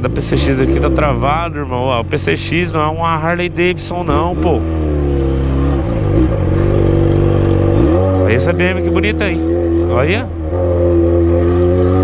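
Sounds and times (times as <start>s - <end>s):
loud motorcycle engine: 0.0s - 12.0s.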